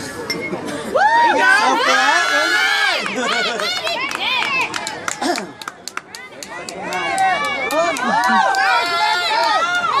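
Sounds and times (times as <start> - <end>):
children shouting and cheering: 6.2 - 10.0.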